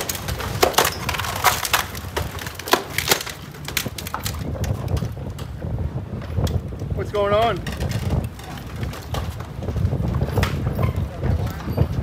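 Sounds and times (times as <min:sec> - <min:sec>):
sharp cracking and splintering: 0:00.0 - 0:05.1
hull crushing concrete dock: 0:00.0 - 0:12.0.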